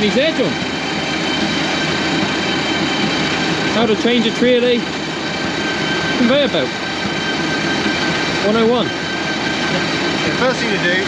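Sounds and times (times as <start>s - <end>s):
conveyor belt and rollers running: 0.0s - 11.0s
tractor engine: 0.0s - 11.0s.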